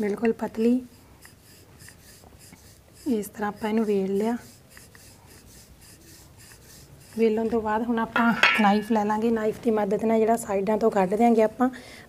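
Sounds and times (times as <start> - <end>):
woman speaking: 0.0 - 0.9, 3.0 - 4.5, 7.2 - 11.8
knife clinking on steel plate: 8.2 - 9.0.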